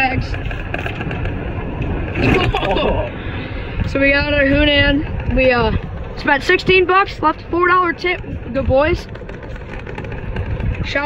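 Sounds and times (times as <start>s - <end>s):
golf cart driving rumble: 0.0s - 11.0s.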